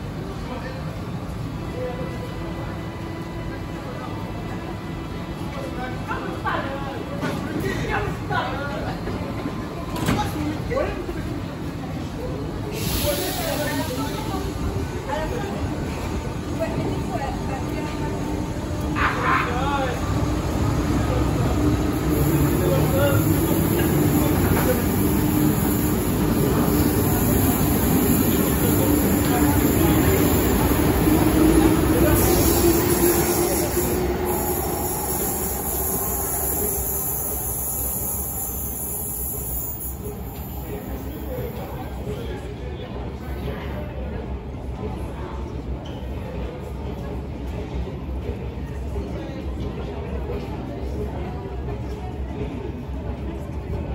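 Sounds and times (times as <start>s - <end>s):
train air hiss: 12.6s - 14.6s, 21.9s - 41.5s.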